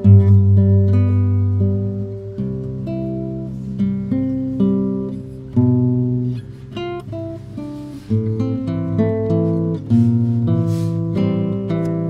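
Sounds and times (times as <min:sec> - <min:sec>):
classical guitar melody over chords: 0:00.0 - 0:12.0.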